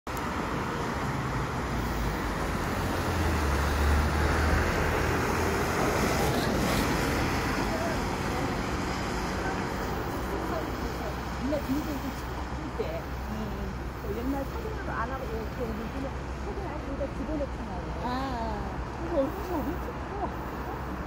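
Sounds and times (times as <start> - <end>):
heavy vehicles driving past: 0.1 - 21.0.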